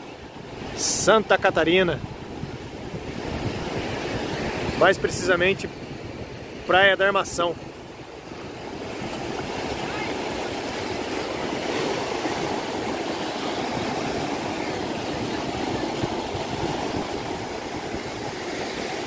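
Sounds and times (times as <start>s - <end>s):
ocean surf breaking: 0.0s - 19.0s.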